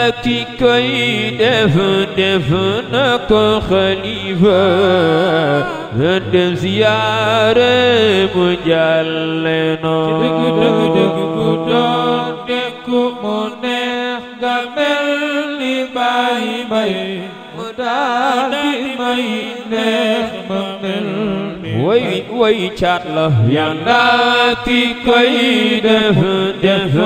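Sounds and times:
man chanting religious song: 0.0 - 27.0
steady low drone note: 2.4 - 12.5.

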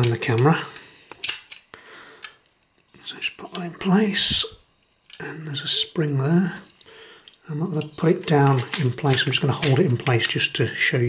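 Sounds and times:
plastic toy parts clicking: 1.1 - 1.6, 7.2 - 10.4.

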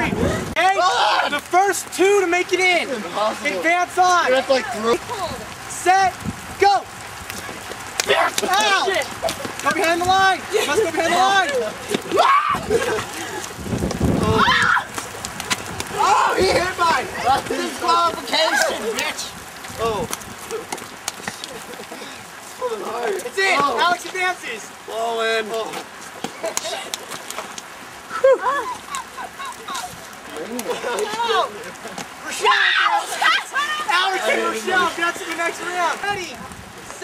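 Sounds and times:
young people shouting: 0.0 - 5.9, 6.6 - 13.5, 14.2 - 15.2, 15.8 - 19.3, 28.2 - 36.4.

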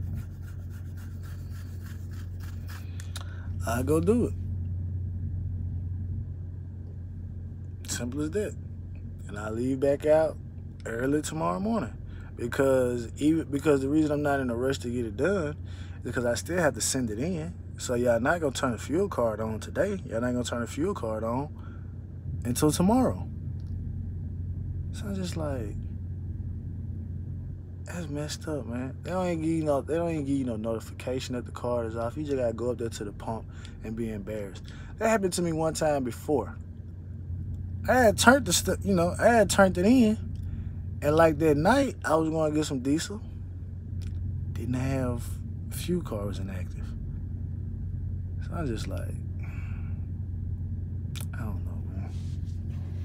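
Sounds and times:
hand scratching hair: 0.0 - 3.3
steady low hum: 0.0 - 53.0
vehicle engine idling: 0.0 - 53.0.

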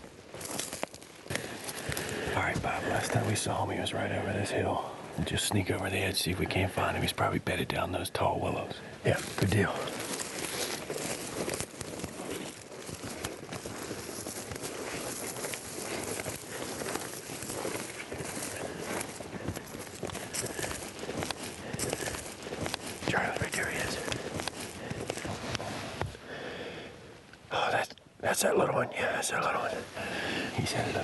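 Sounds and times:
footsteps through dry brush: 0.0 - 4.6, 9.0 - 26.3.

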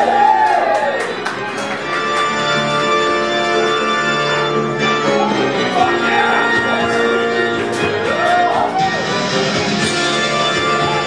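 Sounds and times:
organ sustained chords: 1.0 - 8.1.

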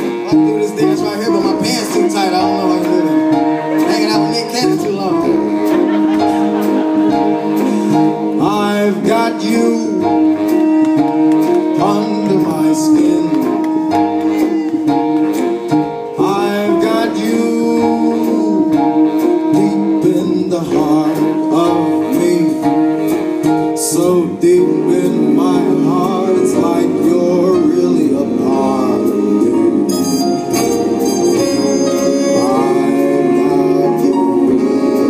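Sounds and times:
big band swing music: 0.0 - 35.0.

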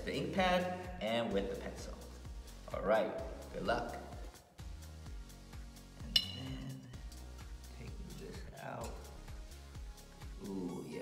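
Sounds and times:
background music with beat: 0.0 - 11.0
glass jar clinking: 6.0 - 6.7.

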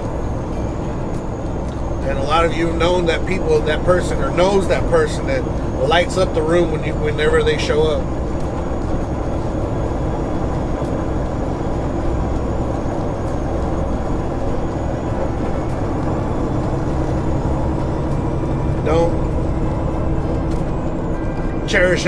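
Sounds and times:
truck engine and road noise: 0.0 - 22.0.

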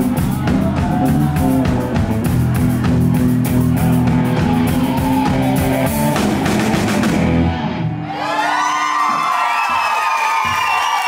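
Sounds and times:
live rock band playing: 0.0 - 8.0
audience cheering and whooping: 0.1 - 2.2, 4.1 - 6.1, 7.6 - 11.0.

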